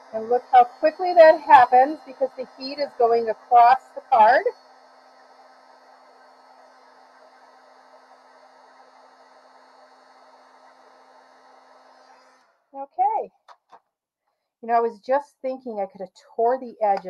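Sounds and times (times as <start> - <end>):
heat tool blowing hot air: 0.0 - 12.5.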